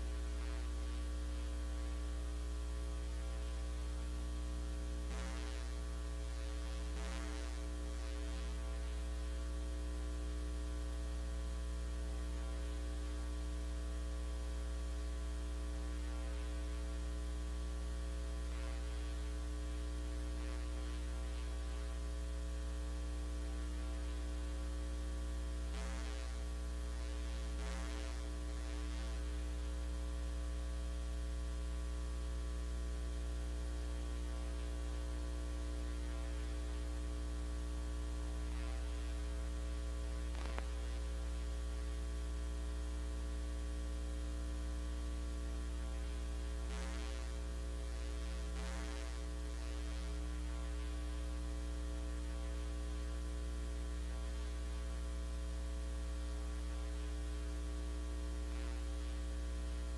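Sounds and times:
electrical mains hum: 0.0s - 59.9s.

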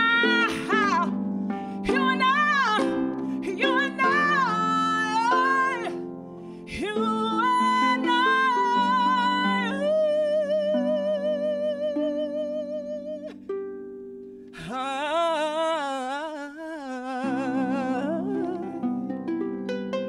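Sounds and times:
woman singing with vibrato: 0.0s - 6.1s, 6.7s - 13.4s, 14.6s - 19.1s
harp plucked notes: 0.0s - 14.7s, 17.2s - 20.0s.

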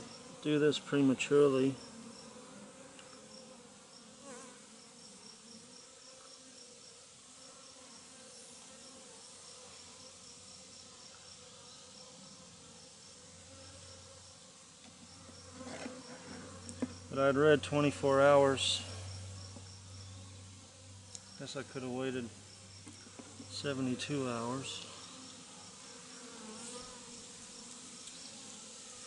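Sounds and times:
honeybees humming: 0.0s - 29.0s.

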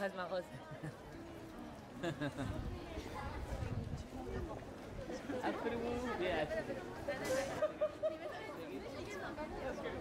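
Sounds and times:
chatter of people talking: 0.0s - 10.0s.

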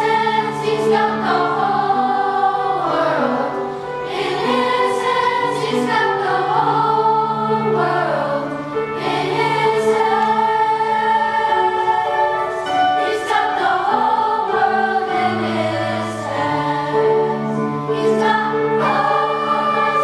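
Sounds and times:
children's choir singing: 0.0s - 20.0s.

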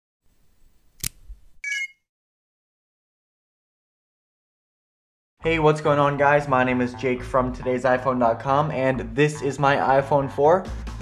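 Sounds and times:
sharp click: 1.0s - 1.3s.

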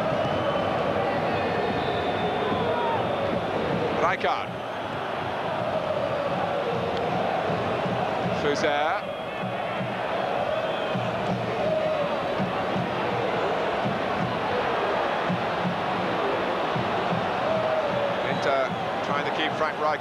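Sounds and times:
stadium crowd chanting and singing: 0.0s - 20.0s.

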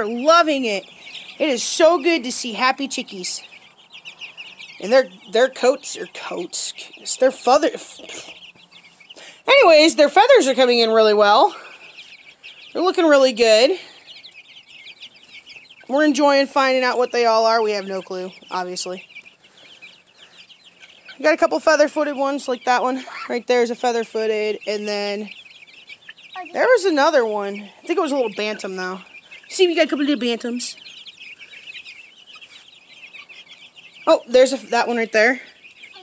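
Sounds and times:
young chickens cheeping: 0.0s - 36.0s.

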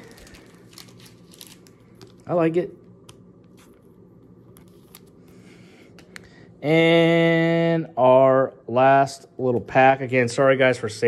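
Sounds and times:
trading cards handled: 0.0s - 2.3s, 3.0s - 6.3s
low room hum: 0.0s - 11.0s.

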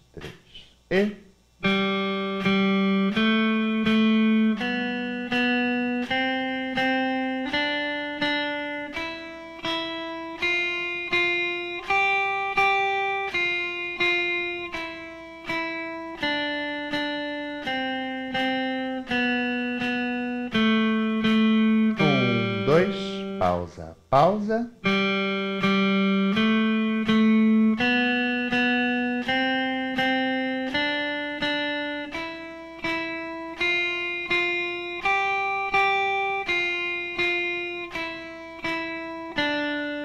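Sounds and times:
electric guitar single notes: 0.0s - 40.0s
metronome ticking: 15.5s - 23.6s.

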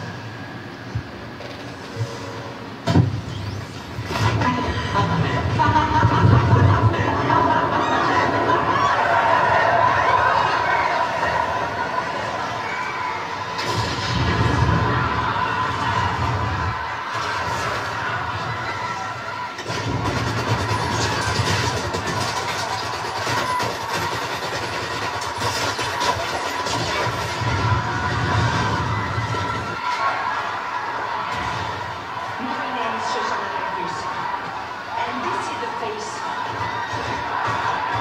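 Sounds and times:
crowd commotion: 0.0s - 38.0s.

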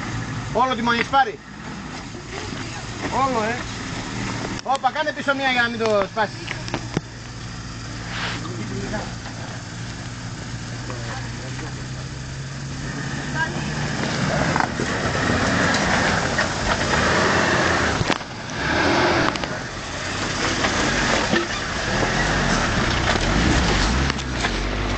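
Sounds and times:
off-road vehicle engine pulling: 0.0s - 24.9s
tyres grinding over rock: 0.9s - 24.9s.

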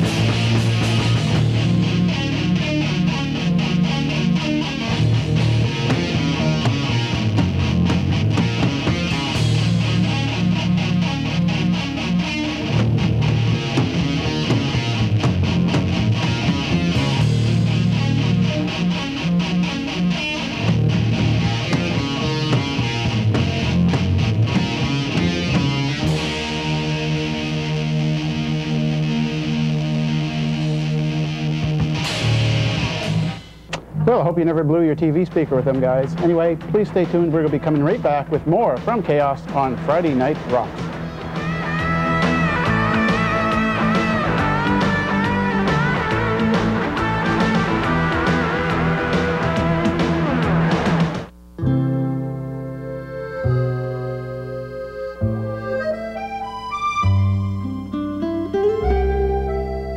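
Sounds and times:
heavy metal band playing live: 0.0s - 33.7s, 35.7s - 51.3s.

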